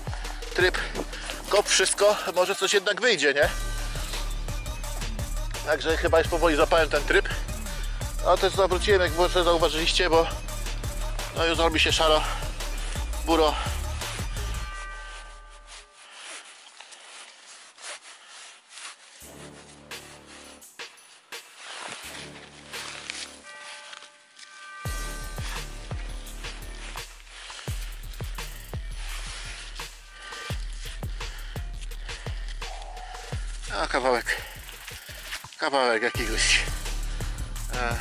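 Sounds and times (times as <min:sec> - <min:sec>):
hand digger scraping soil: 0:14.3 - 0:36.4.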